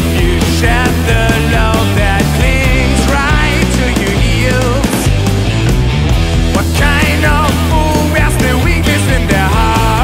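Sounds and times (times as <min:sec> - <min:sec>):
blues-rock band playing: 0:00.0 - 0:10.0
drum hits: 0:00.0 - 0:10.0
vibrato electric guitar lead: 0:00.0 - 0:10.0.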